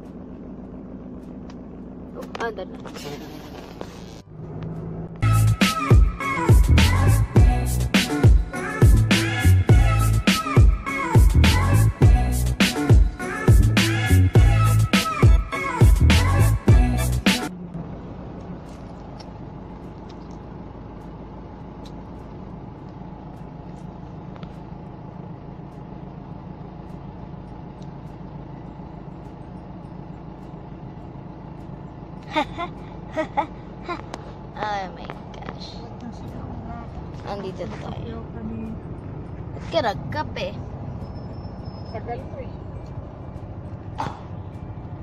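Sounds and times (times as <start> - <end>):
car engine and road hum: 0.0 - 45.0.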